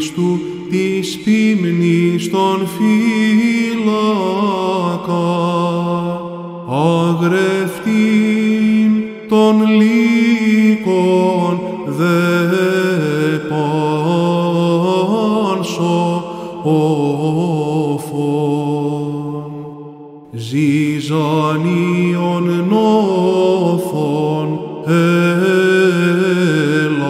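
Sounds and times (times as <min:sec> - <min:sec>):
man chanting solo: 0:00.0 - 0:19.7, 0:20.4 - 0:27.0.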